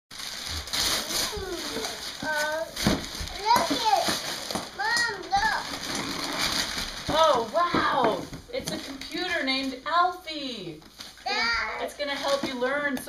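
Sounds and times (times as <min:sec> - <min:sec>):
wrapping paper rustling and tearing: 0:00.1 - 0:07.8, 0:10.8 - 0:12.9.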